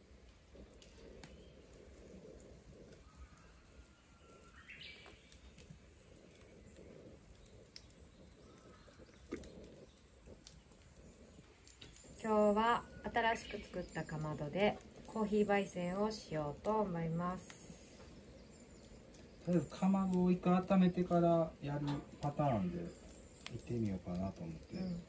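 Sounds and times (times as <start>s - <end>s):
fire crackling: 0.0s - 25.0s.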